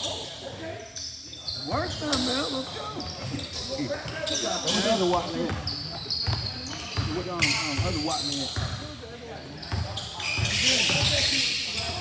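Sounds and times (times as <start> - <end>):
sneakers squeaking: 0.0 - 12.0.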